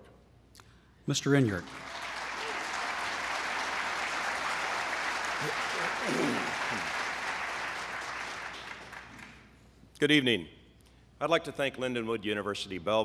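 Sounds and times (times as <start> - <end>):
audience applauding: 1.6 - 9.5.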